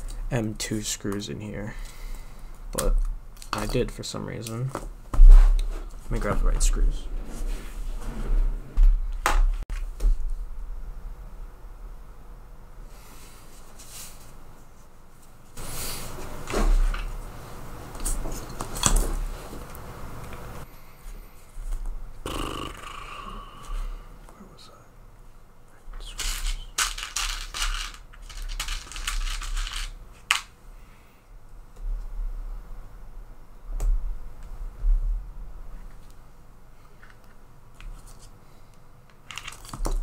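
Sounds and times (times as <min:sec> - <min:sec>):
plastic parts clicking and rattling: 0:26.1 - 0:30.5, 0:39.1 - 0:40.0.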